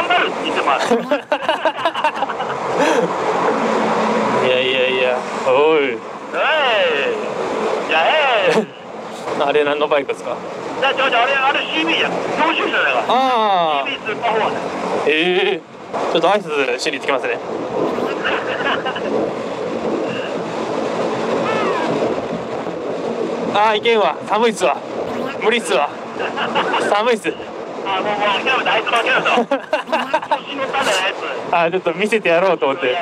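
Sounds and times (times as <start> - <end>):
wind and motorcycle road noise: 0.0 - 33.0.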